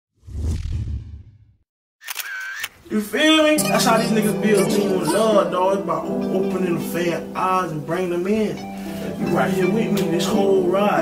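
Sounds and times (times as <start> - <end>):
whoosh with deep boom: 0.2 - 1.6.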